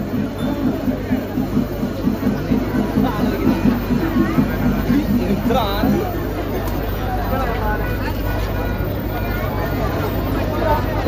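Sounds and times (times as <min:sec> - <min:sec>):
crowd babble: 0:00.0 - 0:11.0.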